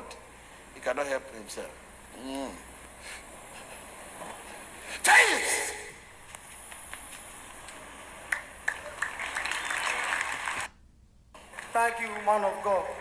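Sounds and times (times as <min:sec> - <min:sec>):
congregation clapping: 0:07.6 - 0:10.8, 0:11.4 - 0:13.0.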